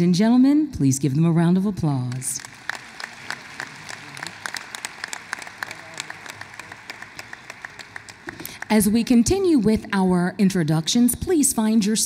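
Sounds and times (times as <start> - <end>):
audience applauding: 2.1 - 9.5.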